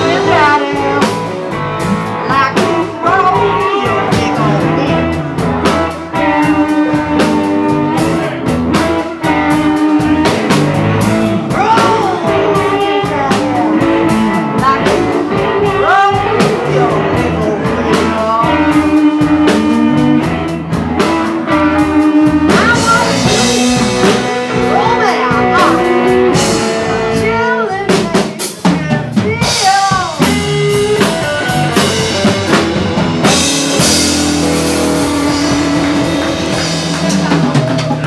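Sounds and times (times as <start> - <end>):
woman singing: 0.0 - 1.2, 2.1 - 5.2, 11.4 - 20.4, 21.5 - 26.0, 34.8 - 37.8
blues rock band playing: 0.0 - 38.0.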